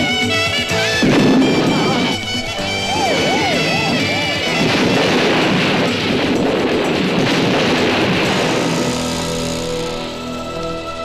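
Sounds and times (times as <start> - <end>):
car fire burning: 4.4 - 9.8.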